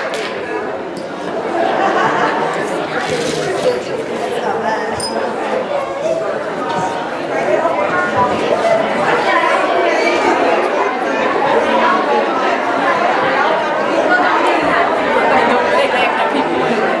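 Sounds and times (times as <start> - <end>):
crowd conversation in a hall: 0.0 - 17.0.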